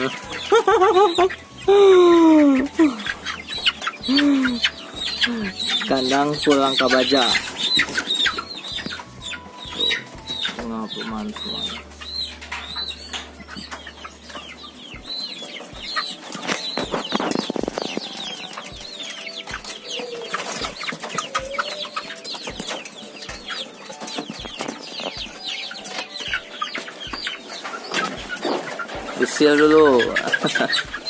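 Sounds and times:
young cockerels calling: 0.0s - 31.0s
birds knocking and scuffling: 15.0s - 31.0s.

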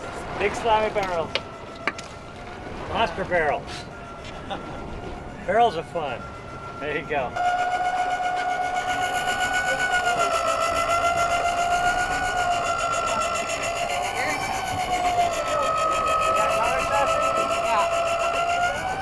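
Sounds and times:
electric fishing reel motor whining: 0.0s - 19.0s.

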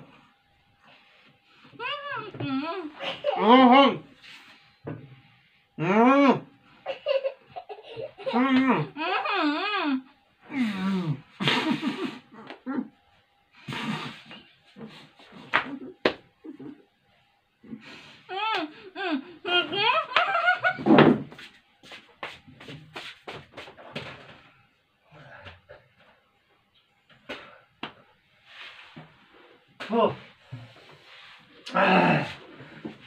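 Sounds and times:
muffled laughing: 11.4s - 13.0s, 13.7s - 16.9s, 18.5s - 21.0s.

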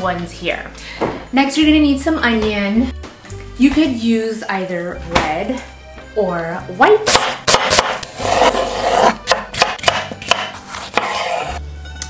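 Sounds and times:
knife cutting through vegetables: 7.1s - 11.6s.

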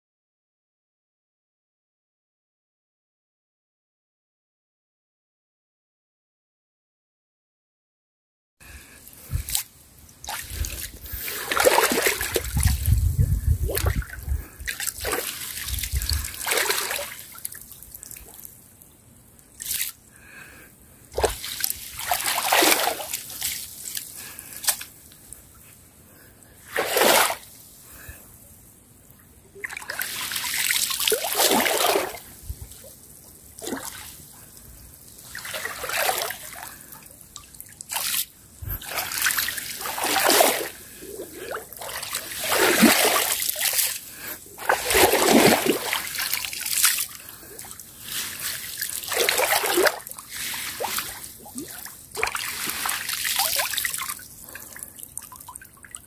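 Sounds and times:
stick swishing through shallow water: 9.2s - 18.5s, 19.6s - 20.0s, 21.2s - 25.0s, 26.6s - 27.8s, 29.6s - 54.6s.

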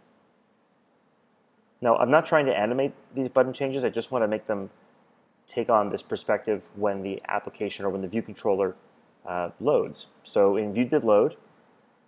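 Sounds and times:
man speaking: 1.8s - 4.7s, 5.5s - 11.4s.

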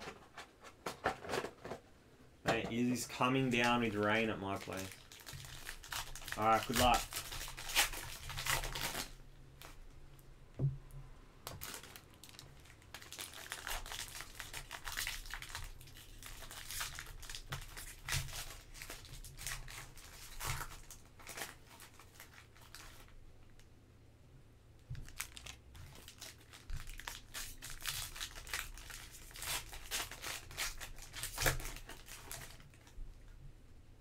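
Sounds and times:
foil wrappers tearing and crinkling: 2.8s - 9.7s, 11.5s - 23.1s, 25.0s - 33.0s.

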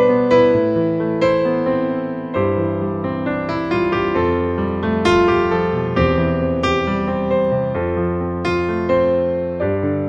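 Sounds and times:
solo piano ballad: 0.0s - 10.0s.

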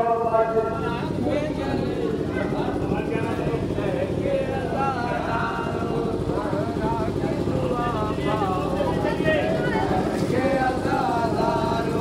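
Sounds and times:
men chanting a lament: 0.0s - 12.0s
rumble of large crowd: 0.0s - 12.0s.

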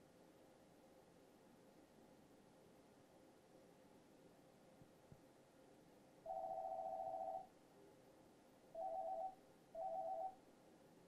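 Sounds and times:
electronic telephone ringing: 6.3s - 7.4s, 8.8s - 10.4s.

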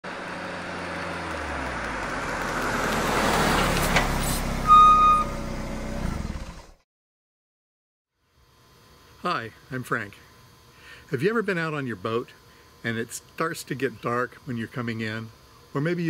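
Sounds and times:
vehicle rumble: 0.1s - 6.8s
short high beep: 4.6s - 5.4s.

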